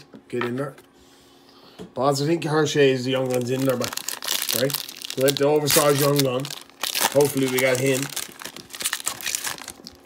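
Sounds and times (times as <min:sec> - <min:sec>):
plastic wrapper crinkling: 0:03.0 - 0:10.0.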